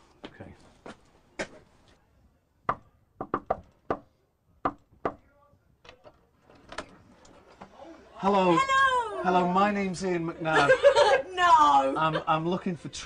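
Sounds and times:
knuckles knocking on door: 2.7 - 4.0.

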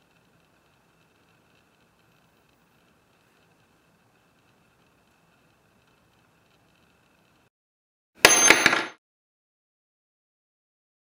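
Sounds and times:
metal nail clinking on hard surface: 8.2 - 9.0.

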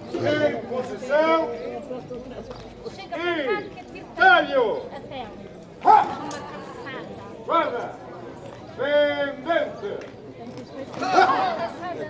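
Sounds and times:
crowd chatter: 0.0 - 12.0
dog barking: 5.8 - 6.2.

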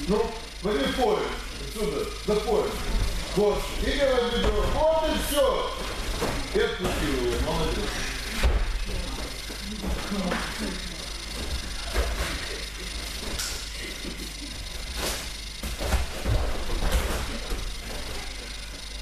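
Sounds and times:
thumps of feet on mats: 14.9 - 17.7
body thudding onto mat: 15.0 - 17.7.

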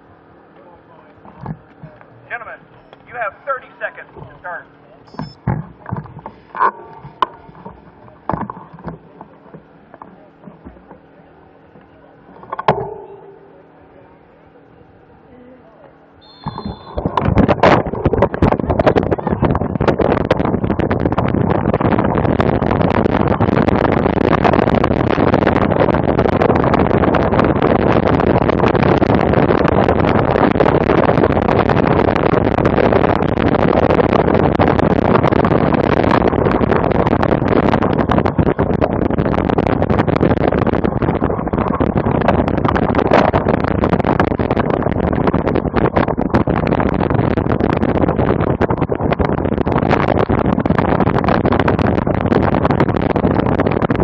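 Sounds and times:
wind rush on microphone: 0.0 - 54.0
bike riding noise over dirt: 5.2 - 13.6, 16.2 - 54.0.

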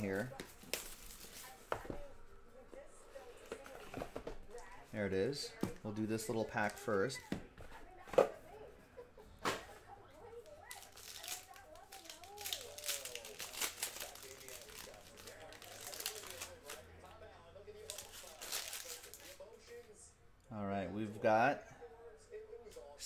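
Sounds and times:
foil wrapper tearing and crinkling: 10.6 - 16.8, 17.8 - 19.5.

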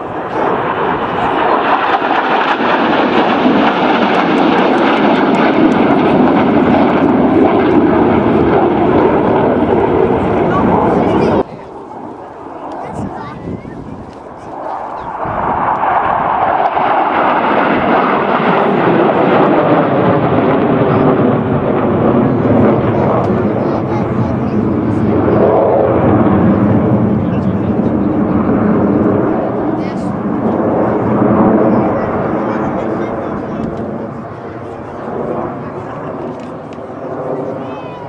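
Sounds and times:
jet fighters passing overhead: 0.0 - 38.0.

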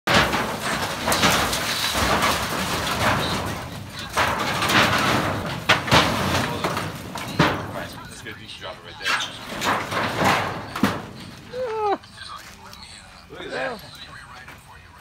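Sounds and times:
metal sheeting scraping and rattling: 0.1 - 14.9.

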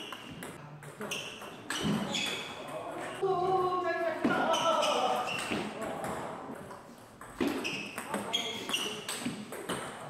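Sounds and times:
table tennis ball bouncing: 0.0 - 3.0, 4.2 - 10.0.

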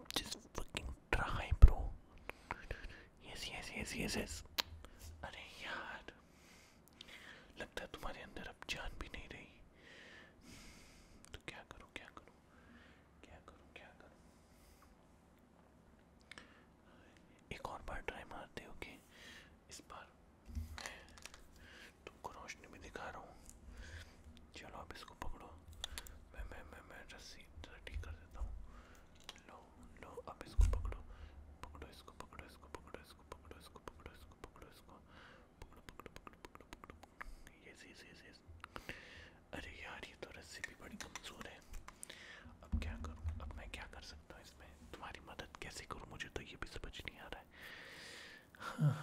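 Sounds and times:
man whispering: 0.0 - 6.2, 7.0 - 9.7, 11.2 - 12.4, 13.2 - 14.2, 16.8 - 47.8, 48.5 - 49.0.

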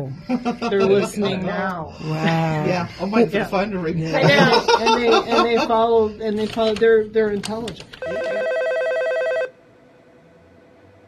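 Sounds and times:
telephone bell ringing: 8.0 - 9.6.

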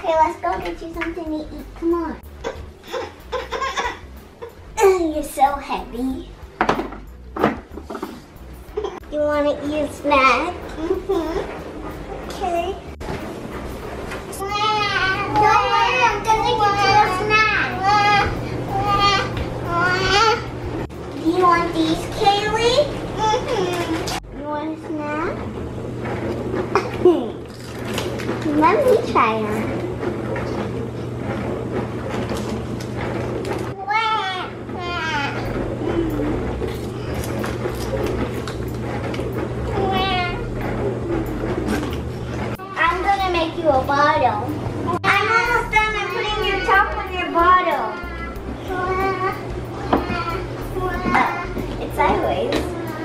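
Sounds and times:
low background hum: 0.0 - 53.0.

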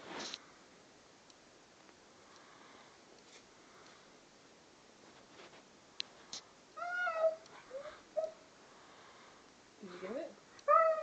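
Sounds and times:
dog whining in high calls: 6.8 - 8.4, 10.6 - 11.0.

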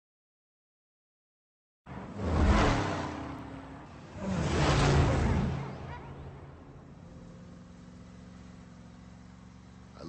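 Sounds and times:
car engine passing: 1.9 - 10.0.

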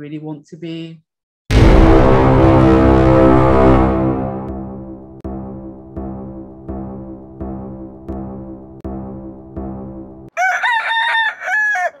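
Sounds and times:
music: 1.5 - 10.4
rooster crowing: 10.3 - 12.0.

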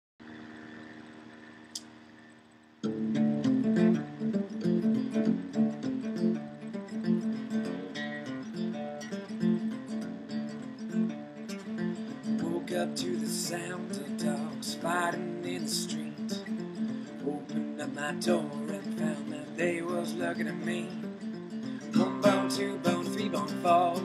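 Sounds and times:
acoustic guitar strumming: 2.8 - 24.0.

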